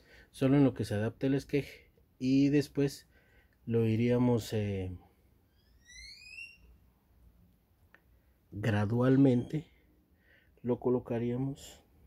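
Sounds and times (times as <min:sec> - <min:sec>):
high rising whistle-like tone: 0:05.4 - 0:06.8.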